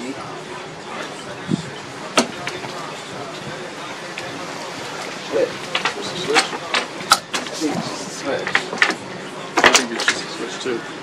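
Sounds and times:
low talk: 0:00.0 - 0:11.0.

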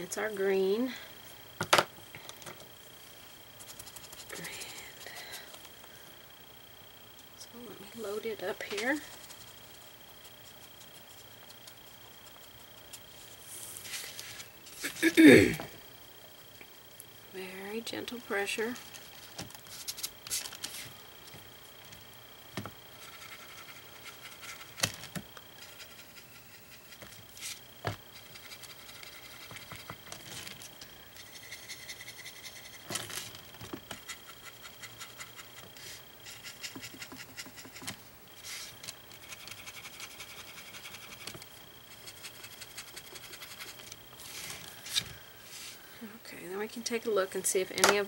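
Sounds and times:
paintbrush scratching on wood: 0:08.6 - 0:14.9.

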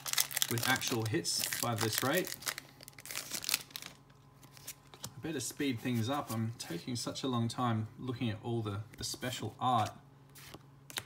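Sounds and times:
trading cards rustling: 0:00.0 - 0:06.8.

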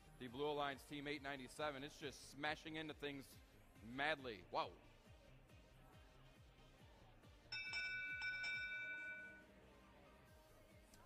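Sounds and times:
electronic multi-tone chime: 0:07.5 - 0:09.6.

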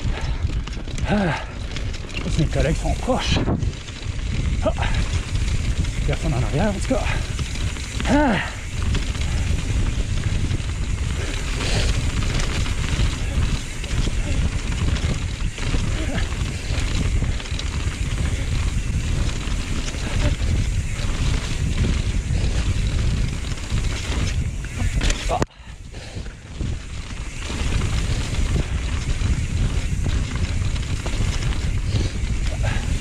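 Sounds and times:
bike knocks and rattles: 0:00.0 - 0:33.0
tyres rolling on dirt trail: 0:00.0 - 0:33.0
wind buffeting microphone: 0:00.0 - 0:33.0.

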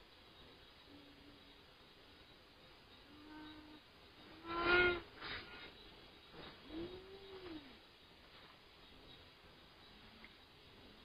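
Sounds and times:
drawn-out pitched animal calls: 0:03.0 - 0:05.7.

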